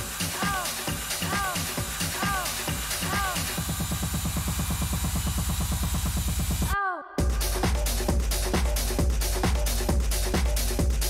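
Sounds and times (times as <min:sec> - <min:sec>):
steady low bass: 0:00.9 - 0:11.0.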